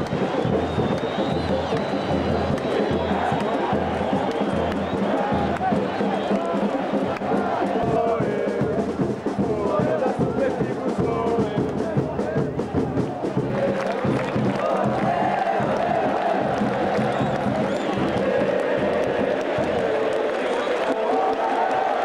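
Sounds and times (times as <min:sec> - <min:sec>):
stadium crowd singing and chanting: 0:00.0 - 0:22.0.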